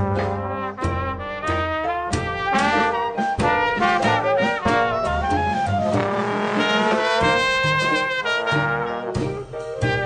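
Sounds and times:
jazz band playing: 0:00.0 - 0:10.0.

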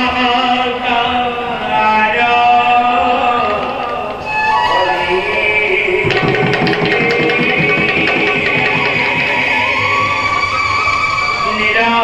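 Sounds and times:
barrel drum rhythm: 0:06.0 - 0:11.4
held melody line: 0:06.0 - 0:11.7.

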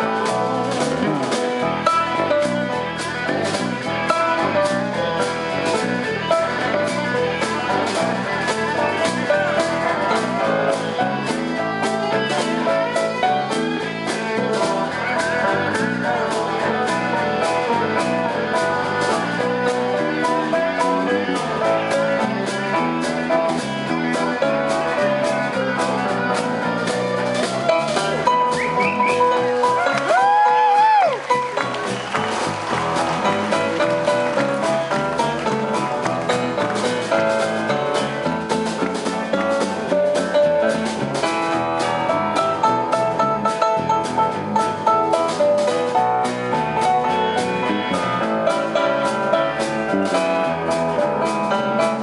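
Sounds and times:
bass guitar: 0:00.0 - 0:52.0
drum kit beat: 0:00.0 - 0:52.0
electric guitar: 0:00.0 - 0:52.0.

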